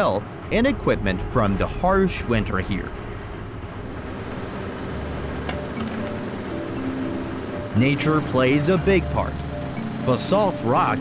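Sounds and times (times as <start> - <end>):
steady rushing noise: 0.0 - 11.0
background music sustained notes: 3.7 - 11.0.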